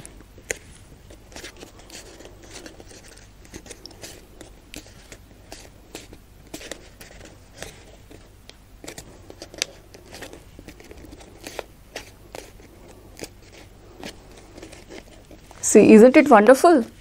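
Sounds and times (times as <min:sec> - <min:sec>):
paper fan crinkling: 0:00.0 - 0:17.0.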